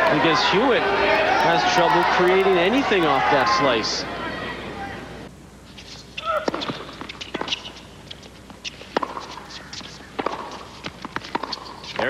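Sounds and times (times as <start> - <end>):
tennis ball pocks: 6.3 - 12.0.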